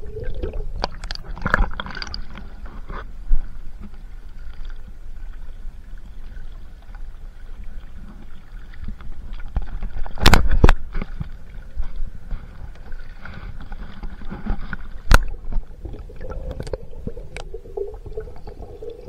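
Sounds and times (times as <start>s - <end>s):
water sloshing and splashing: 0.0s - 19.0s.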